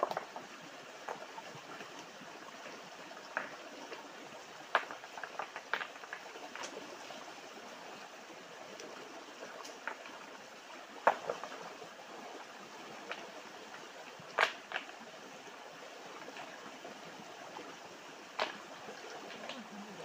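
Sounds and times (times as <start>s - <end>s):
rocks knocking on streambed: 0.0s - 2.0s, 3.2s - 3.7s, 4.7s - 6.8s, 9.6s - 10.2s, 11.0s - 11.6s, 14.3s - 15.0s, 18.3s - 19.6s
stream rushing over stones: 0.0s - 20.0s.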